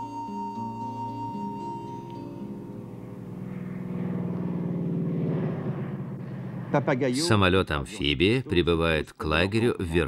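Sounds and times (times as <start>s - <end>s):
propeller engine droning: 0.0s - 7.4s.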